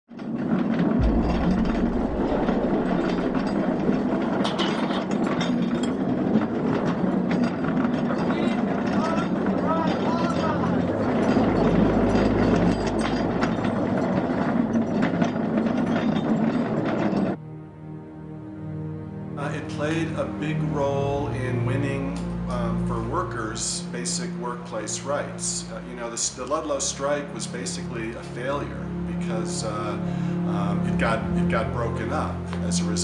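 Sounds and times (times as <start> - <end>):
mechanical clatter and clicking: 0.1 - 17.4
low rumble: 0.7 - 17.4
indistinct voices: 7.7 - 14.5.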